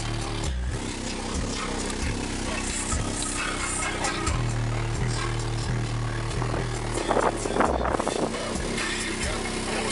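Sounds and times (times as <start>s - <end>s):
subwoofer playing hip-hop bass: 0.0s - 9.9s.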